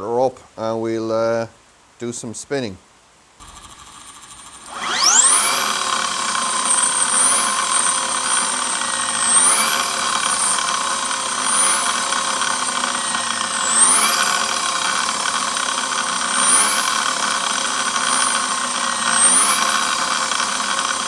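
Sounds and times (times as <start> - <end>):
electric motor whine: 3.4 - 21.0.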